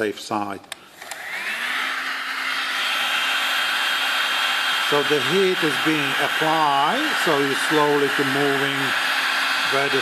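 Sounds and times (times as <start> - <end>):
heat gun fan whirring: 0.6 - 10.0.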